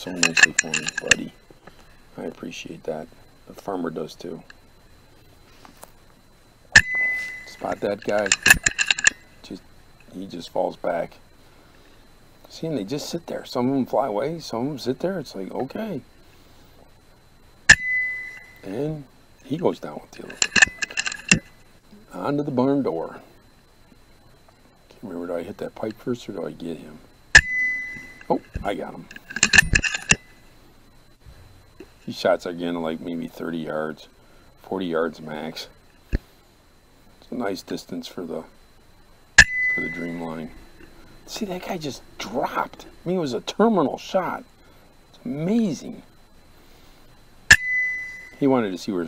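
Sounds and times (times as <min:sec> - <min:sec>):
high ringing tone: 0:00.0 - 0:05.2, 0:06.2 - 0:10.4, 0:17.1 - 0:24.4, 0:25.2 - 0:33.9, 0:39.0 - 0:46.9, 0:47.5 - 0:49.0
air rifle action cycling: 0:08.0 - 0:09.1, 0:29.2 - 0:30.2.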